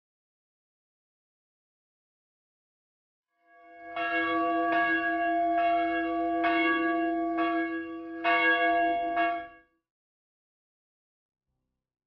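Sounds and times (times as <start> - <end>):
church bell tolling: 3.5 - 9.6.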